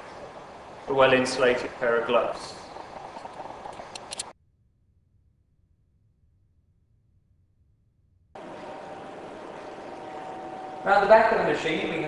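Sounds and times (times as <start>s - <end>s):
steady background hiss: 0.0s - 4.3s, 8.4s - 12.0s
faint even hum tone: 4.5s - 12.0s.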